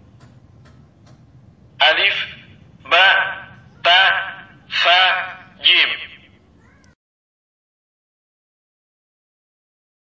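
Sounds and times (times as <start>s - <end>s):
electronic voice pronouncing syllables: 1.8s - 6.3s.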